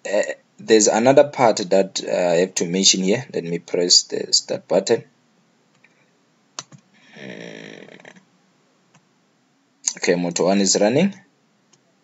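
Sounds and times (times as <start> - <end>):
computer mouse click: 6.6 - 6.9
person exhaling: 7.0 - 8.1.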